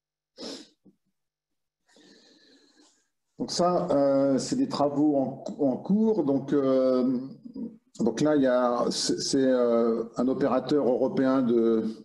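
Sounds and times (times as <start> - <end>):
man's sharp sniff: 0.4 - 0.8.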